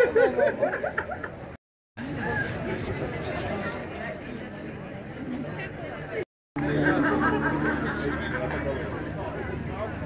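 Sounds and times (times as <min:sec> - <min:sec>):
chatter of voices: 0:02.0 - 0:10.0
steady low drone: 0:06.6 - 0:10.0.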